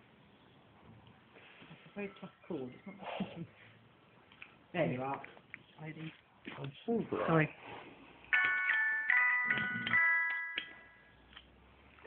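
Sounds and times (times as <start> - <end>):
chiming electronic tune: 8.4 - 11.1.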